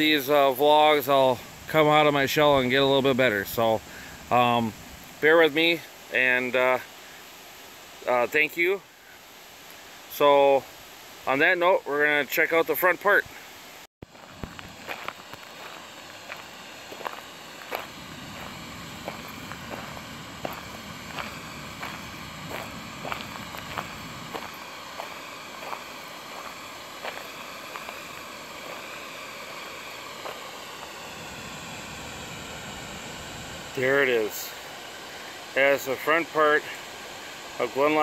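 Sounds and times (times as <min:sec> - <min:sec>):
steady rushing noise: 0:00.0 - 0:08.9, 0:14.0 - 0:38.0
footsteps on gravel: 0:14.0 - 0:31.0.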